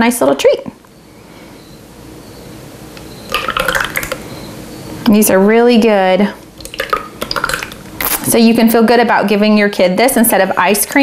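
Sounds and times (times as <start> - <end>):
thick liquid pouring into molds: 6.6 - 7.9.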